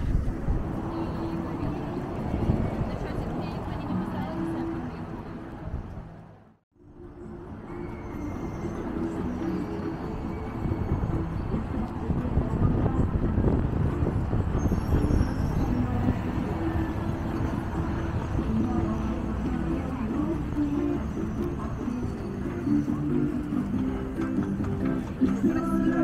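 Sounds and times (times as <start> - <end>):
road traffic rumble: 0.0 - 26.0.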